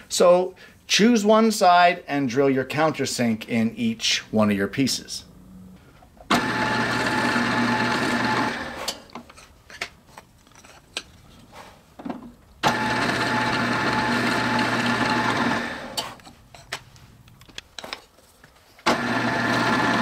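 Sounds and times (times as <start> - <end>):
drill press motor hum: 6.3 - 9.0, 12.6 - 16.1, 18.8 - 20.0.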